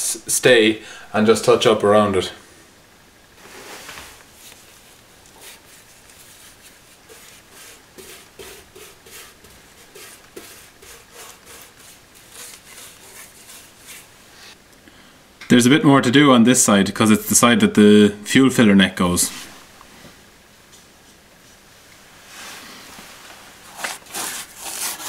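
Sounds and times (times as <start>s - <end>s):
paintbrush scratching on metal: 4.4s - 14.1s.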